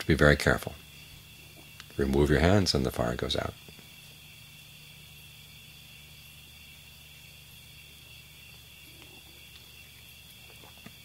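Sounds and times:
crickets chirping: 0.0s - 11.0s
low background hum: 0.0s - 11.0s.

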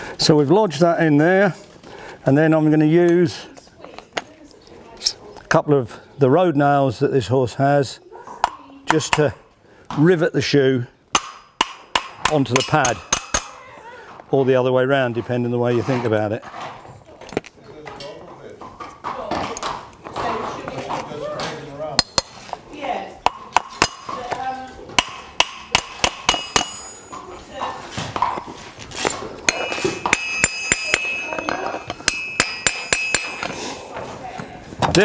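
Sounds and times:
hammer tapping nails on metal: 11.2s - 13.6s, 23.2s - 27.2s, 29.5s - 33.6s.

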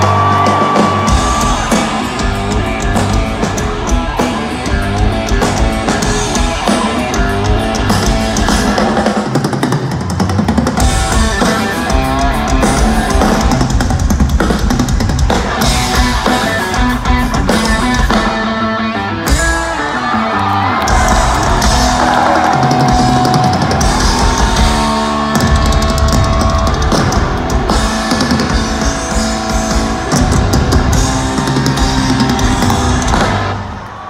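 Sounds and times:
drum kits pounding: 0.0s - 18.5s, 20.6s - 34.0s
electric guitar: 10.7s - 34.0s.

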